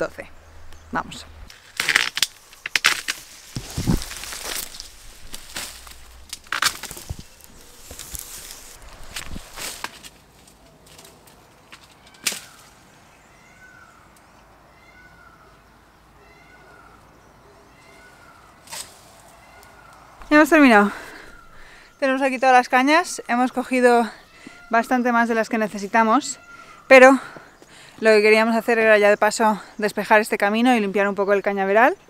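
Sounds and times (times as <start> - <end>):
loppers cutting canes: 1.5 - 10.2
dry reeds rustling and cracking: 1.5 - 12.8, 17.8 - 22.2
sharp snap of cane: 18.6 - 19.0.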